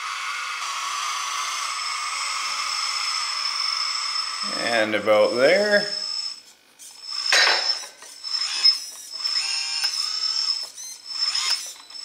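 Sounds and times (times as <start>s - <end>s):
small electric motors whirring: 0.0s - 12.0s.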